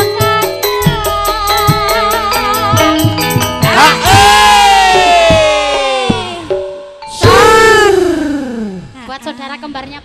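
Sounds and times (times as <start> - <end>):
band playing: 2.2 - 9.0
low drum strokes: 7.2 - 9.0.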